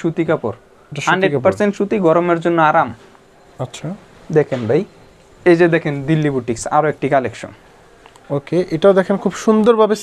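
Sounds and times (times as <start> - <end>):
man speaking: 0.0 - 3.0, 3.6 - 7.6, 8.3 - 10.0.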